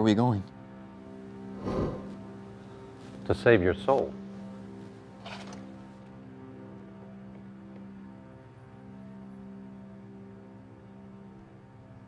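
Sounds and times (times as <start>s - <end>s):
low film score drone: 0.6s - 2.9s.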